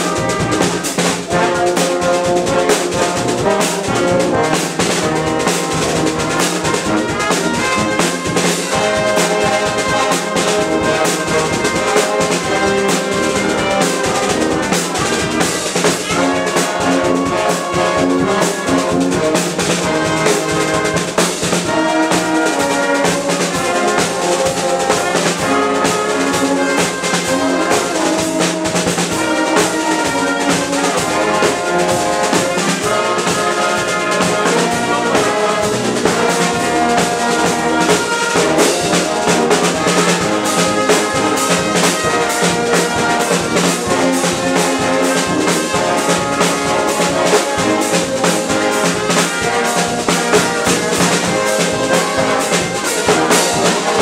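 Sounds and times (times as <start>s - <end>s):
bass drum and snare beat: 0.0s - 54.0s
brass band playing: 0.0s - 54.0s.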